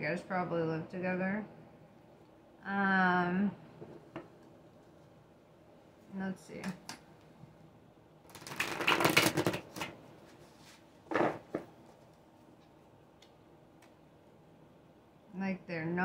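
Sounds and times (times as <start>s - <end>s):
cards being riffle-shuffled: 8.3s - 10.0s.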